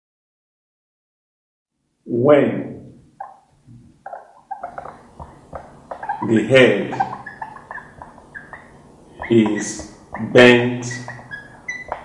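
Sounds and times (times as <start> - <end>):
marker squeaking on whiteboard: 3.2 - 12.0.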